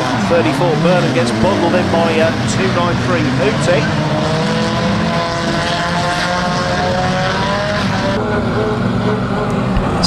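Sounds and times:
vehicle engines revving hard: 0:00.0 - 0:10.0.

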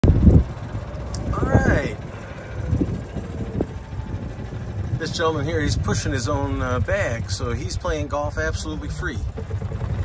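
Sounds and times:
golf cart rumbling: 0:00.0 - 0:10.0
wind buffeting microphone: 0:00.0 - 0:10.0.

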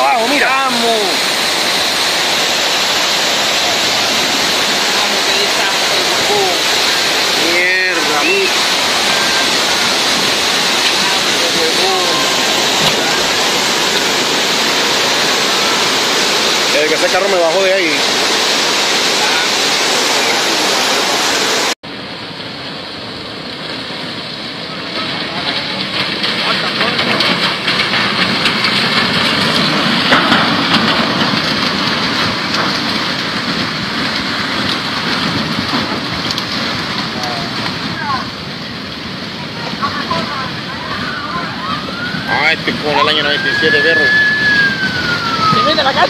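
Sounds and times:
deep rush of flood surge: 0:00.0 - 0:46.0
flash flood roaring: 0:00.0 - 0:46.0.

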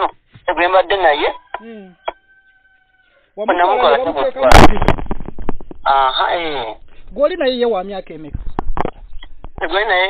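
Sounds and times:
person speaking over telephone: 0:00.0 - 0:01.6, 0:03.5 - 0:04.7, 0:05.8 - 0:06.8, 0:09.6 - 0:10.0.

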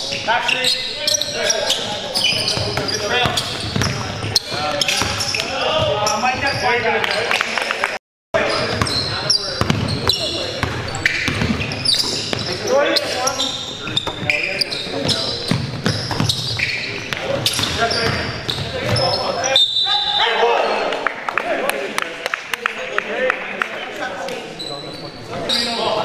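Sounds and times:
sneakers squeaking: 0:00.0 - 0:07.5, 0:08.4 - 0:20.8, 0:24.4 - 0:26.0.

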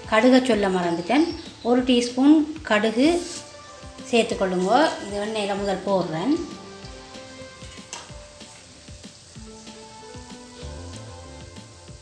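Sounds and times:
hot oil sizzling: 0:03.2 - 0:12.0.

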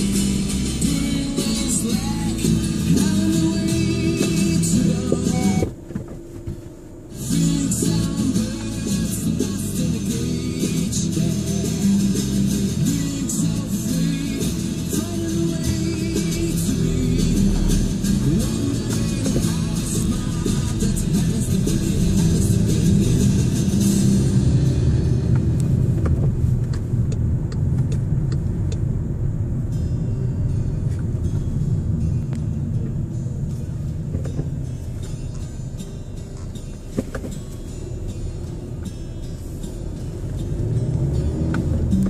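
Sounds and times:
music playing: 0:00.0 - 0:05.9, 0:07.1 - 0:42.0
car engine rumble: 0:00.0 - 0:42.0
road noise inside car: 0:00.0 - 0:42.0.

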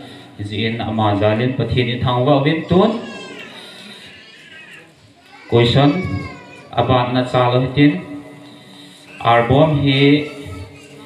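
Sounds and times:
man speaking over pa system: 0:00.4 - 0:03.2, 0:05.5 - 0:08.3, 0:09.1 - 0:10.8.

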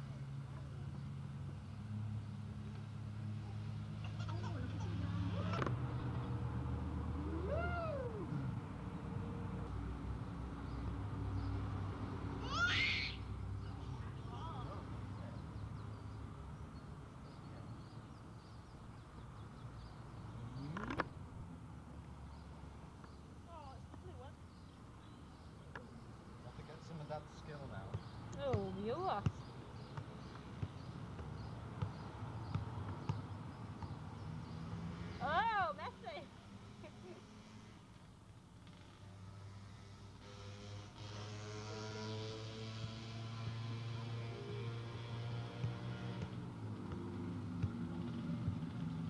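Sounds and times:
baby squealing: 0:12.4 - 0:13.2.

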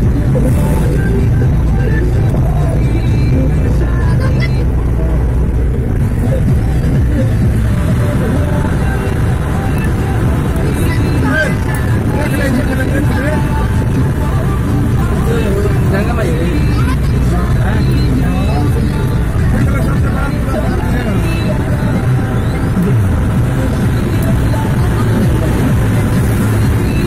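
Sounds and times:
people talking indistinctly: 0:00.0 - 0:27.0
vehicle engine and road rumble: 0:00.0 - 0:27.0.

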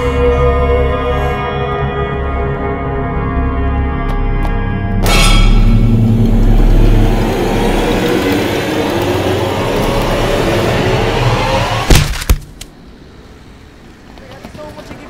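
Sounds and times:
rising tone: 0:04.9 - 0:11.9
deep rumble: 0:04.9 - 0:12.0
heavy impacts: 0:04.9 - 0:12.8
loud rushing swell: 0:05.0 - 0:11.9.

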